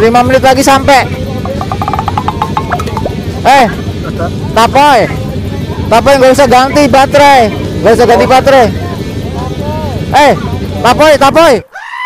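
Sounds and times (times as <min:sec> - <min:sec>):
motorcycle engine and wind rumble: 0:00.0 - 0:11.6
rapid pitched ticks: 0:01.3 - 0:03.2.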